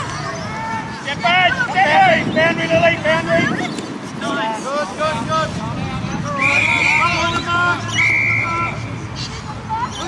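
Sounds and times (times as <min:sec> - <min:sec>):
spectators' voices: 0:00.0 - 0:10.0
whistle blasts: 0:06.4 - 0:08.9.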